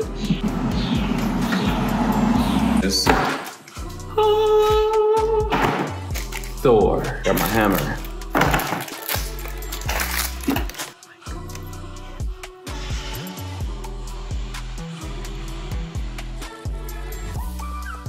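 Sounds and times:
background music with bass beat: 0.0s - 18.0s.

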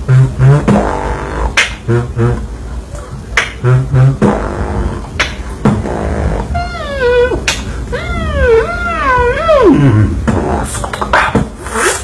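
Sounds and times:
beatboxer's high vocal whine: 0.0s - 12.0s.

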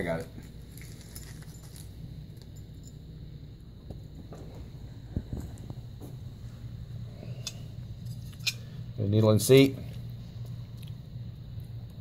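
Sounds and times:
steady low hum: 0.0s - 12.0s
small metal parts clicking: 7.4s - 8.7s.

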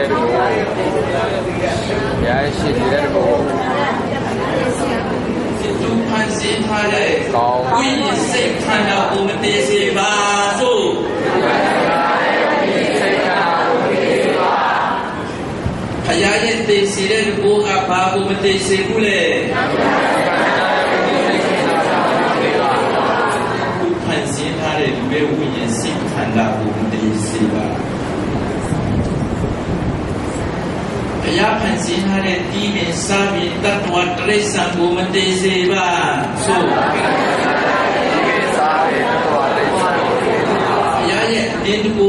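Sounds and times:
man talking into microphone: 1.2s - 3.5s, 5.6s - 11.0s, 16.0s - 19.5s, 23.8s - 27.8s, 31.2s - 36.7s, 41.0s - 42.0s
overlapping voices talking: 11.0s - 15.7s, 19.5s - 24.0s, 36.2s - 41.7s.

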